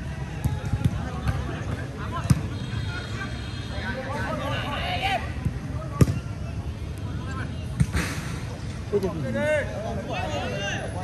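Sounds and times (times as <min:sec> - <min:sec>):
players calling out: 0:00.0 - 0:07.8.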